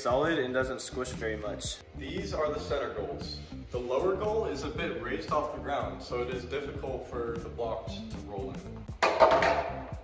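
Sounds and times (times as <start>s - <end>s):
plastic block clattering on goal: 9.0s - 9.7s.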